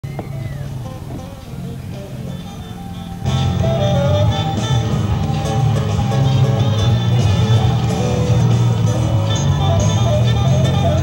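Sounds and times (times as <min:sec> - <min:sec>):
steady low hum: 0:00.0 - 0:11.0
music playing: 0:00.2 - 0:11.0.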